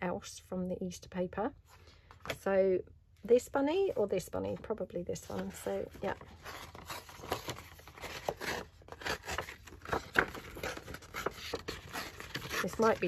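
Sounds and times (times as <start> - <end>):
paper rustling and scraping: 5.1 - 13.0.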